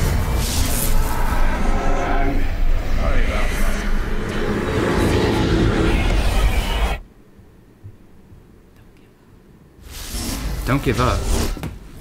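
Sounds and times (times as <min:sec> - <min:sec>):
deep rushing rumble: 0:00.0 - 0:06.9.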